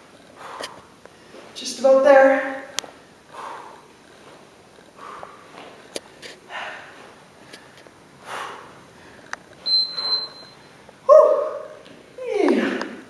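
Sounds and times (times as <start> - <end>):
steady high beep: 9.6 - 10.7.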